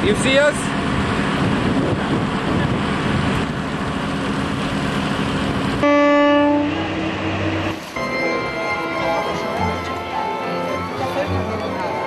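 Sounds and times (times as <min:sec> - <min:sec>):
boat motor rumble: 0:00.6 - 0:12.0
boat horn blast: 0:05.8 - 0:11.6.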